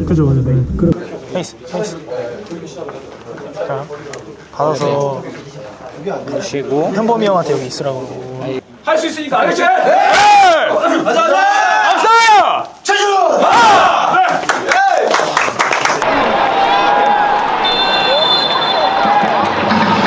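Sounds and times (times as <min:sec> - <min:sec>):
stadium crowd noise: 0:01.0 - 0:20.0
team shouting huddle cry: 0:09.4 - 0:15.1.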